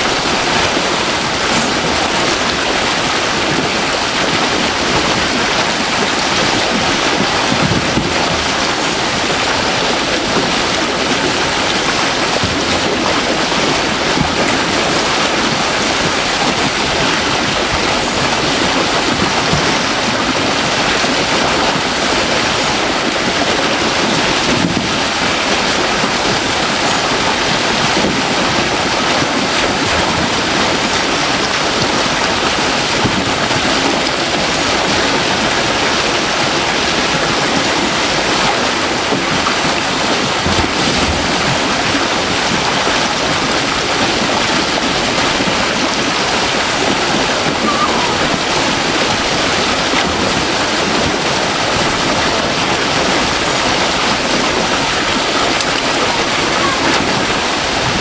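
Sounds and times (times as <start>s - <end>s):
water pouring over a weir: 0.0s - 58.0s.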